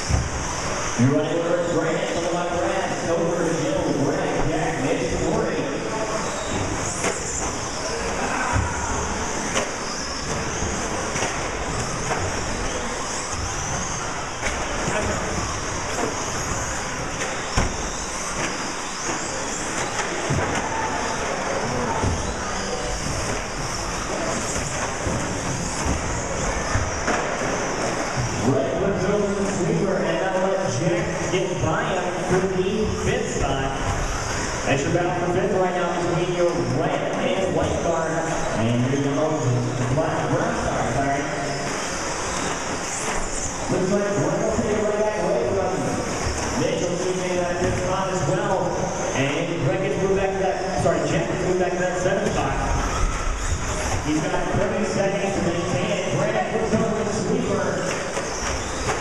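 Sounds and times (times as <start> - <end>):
rc truck motor whine: 0.0 - 29.6, 31.0 - 35.3, 37.6 - 49.2, 49.9 - 55.8, 56.6 - 59.0.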